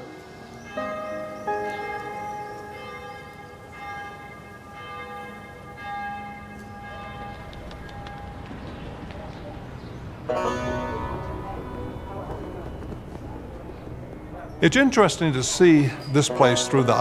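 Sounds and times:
bells ringing: 0:00.0 - 0:17.0.

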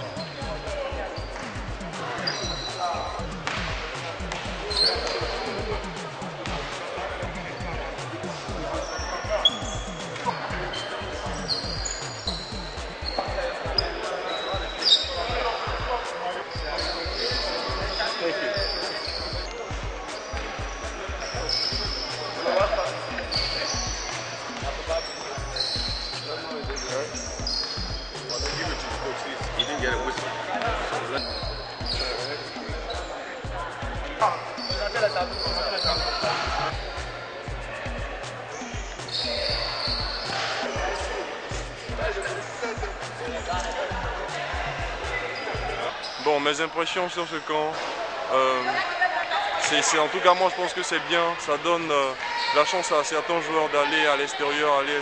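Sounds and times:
sneakers squeaking: 0:00.0 - 0:47.9, 0:52.2 - 0:53.0
chatter of many people: 0:00.0 - 0:55.0.

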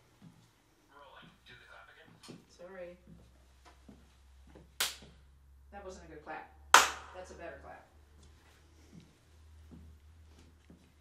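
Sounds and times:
sharp hand clap: 0:04.8 - 0:05.1, 0:06.7 - 0:07.2.

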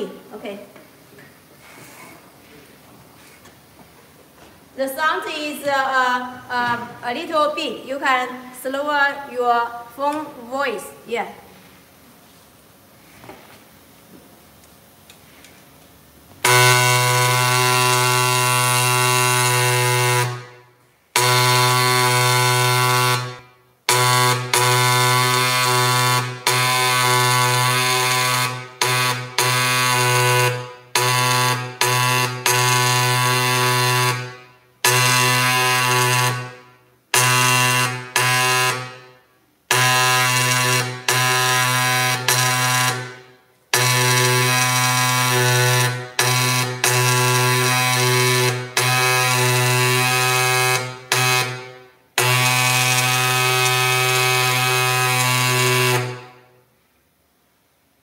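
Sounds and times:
marking machine stylus buzzing: 0:16.4 - 0:20.5.

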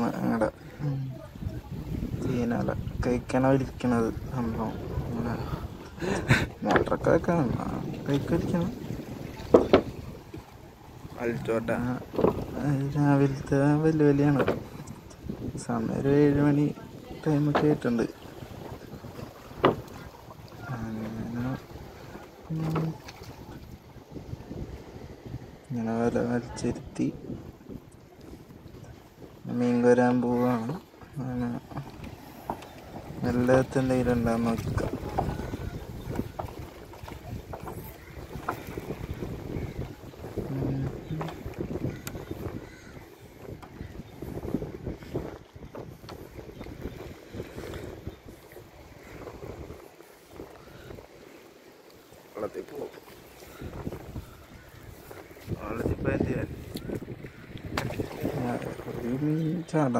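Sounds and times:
water washing: 0:00.0 - 0:59.9
wind: 0:00.0 - 0:59.9.

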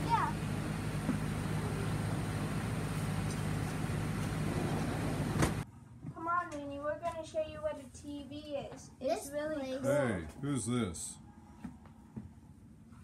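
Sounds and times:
low constant outdoor hum: 0:00.0 - 0:13.0.

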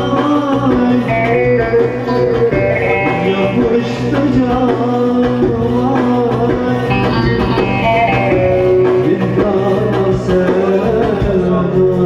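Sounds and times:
electronic keyboard backing: 0:00.0 - 0:12.0
saz playing melody: 0:00.9 - 0:04.4, 0:06.9 - 0:09.6.

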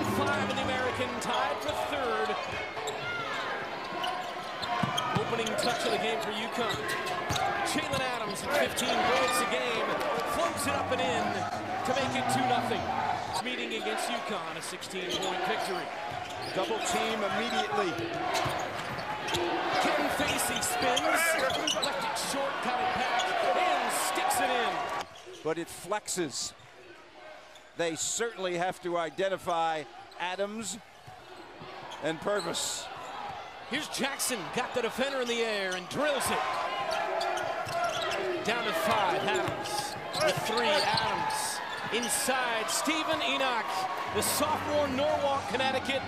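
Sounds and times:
murmur of voices: 0:00.0 - 0:25.0, 0:31.5 - 0:46.0.

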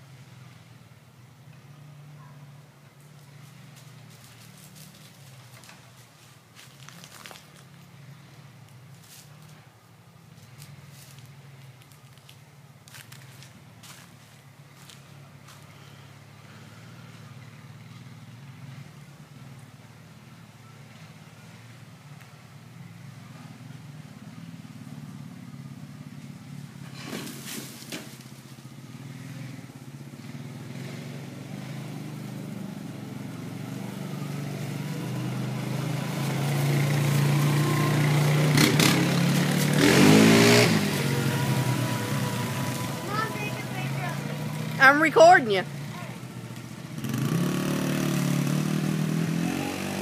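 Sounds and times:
small atv engine passing: 0:00.0 - 0:50.0.

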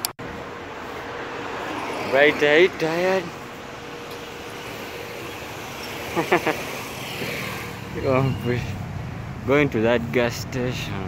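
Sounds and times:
road and traffic noise: 0:00.0 - 0:11.0.

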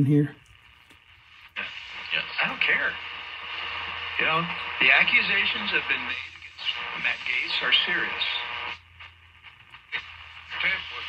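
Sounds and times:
radio talk station: 0:00.0 - 0:11.0
radio hiss: 0:01.1 - 0:11.0.

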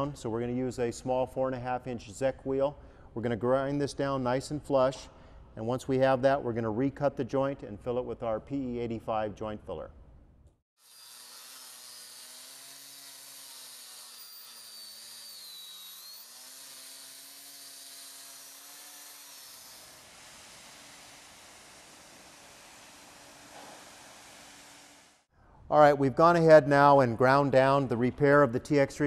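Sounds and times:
angle grinder grinding concrete: 0:10.8 - 0:23.5.

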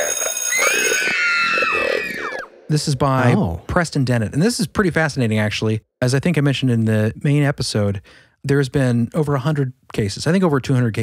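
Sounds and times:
bell-like electronic ringing tone: 0:00.0 - 0:01.2.

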